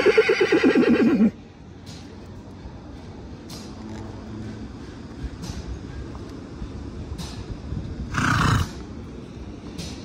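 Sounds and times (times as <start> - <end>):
pony noise: 0.0 - 1.4, 8.1 - 8.8.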